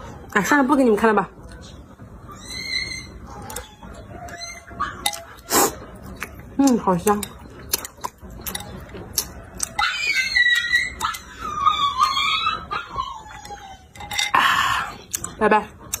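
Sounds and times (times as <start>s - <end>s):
high-pitched animal whine: 2.2s - 5.8s.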